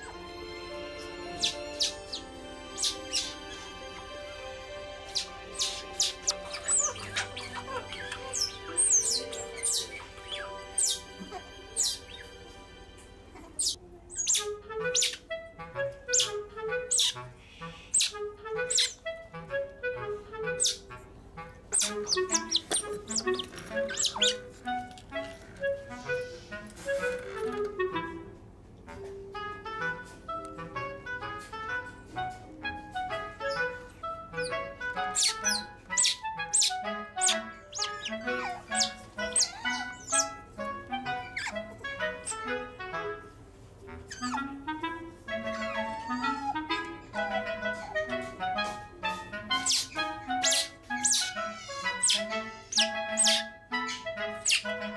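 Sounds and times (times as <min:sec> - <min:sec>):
gentle background music: 0:00.0 - 0:54.9
otter pup squeaking: 0:01.3 - 0:03.7, 0:05.1 - 0:12.3, 0:13.4 - 0:15.3, 0:16.1 - 0:19.0, 0:20.5 - 0:20.8, 0:21.7 - 0:24.5, 0:33.4 - 0:42.5, 0:43.9 - 0:44.6, 0:45.3 - 0:54.8.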